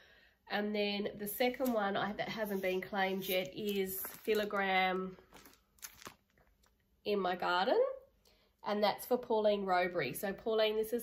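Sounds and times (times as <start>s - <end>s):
plastic sleeve crinkling: 1.4s - 6.8s.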